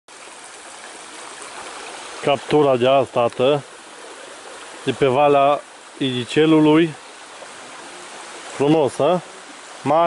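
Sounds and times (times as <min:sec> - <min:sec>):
creek trickling over rocks: 0:00.1 - 0:10.0.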